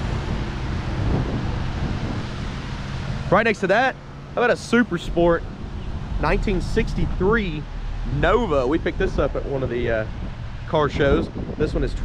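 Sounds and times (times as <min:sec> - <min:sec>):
wind on microphone: 0:00.0 - 0:03.3, 0:04.8 - 0:12.0.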